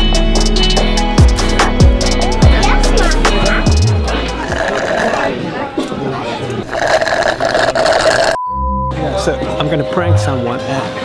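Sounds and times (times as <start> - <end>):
busy mix of sound: 0.4 - 11.0.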